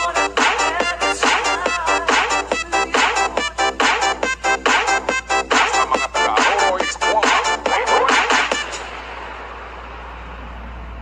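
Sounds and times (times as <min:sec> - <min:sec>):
low hum: 0:08.6 - 0:11.0.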